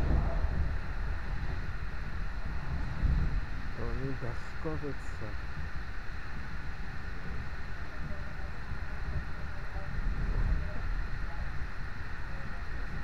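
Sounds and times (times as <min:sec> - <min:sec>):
passenger train rumble: 0:00.0 - 0:05.4.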